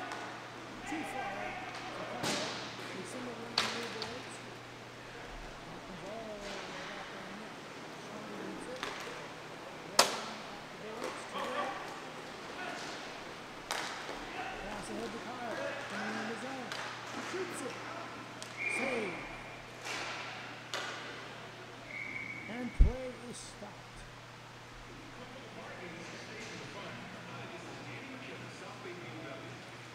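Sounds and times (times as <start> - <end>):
players calling out: 14.2 - 19.8
referee whistle blasts: 18.6 - 19.3, 21.9 - 22.7.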